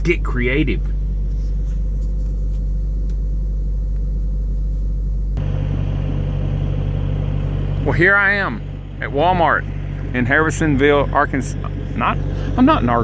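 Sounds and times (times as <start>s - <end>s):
diesel truck engine idling: 0.0s - 13.0s.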